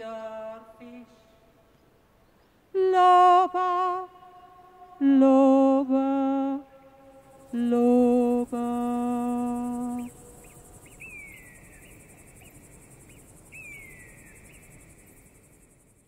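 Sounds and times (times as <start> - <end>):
insects chirring: 0.0 - 16.0
woman singing sustained note: 2.8 - 10.4
short falling whistle-like calls: 6.8 - 15.4.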